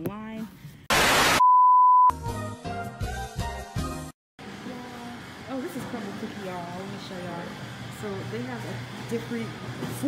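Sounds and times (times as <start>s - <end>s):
static hiss burst: 0.9s - 1.4s
steady single-pitch beep: 1.4s - 2.1s
background music: 2.1s - 4.1s.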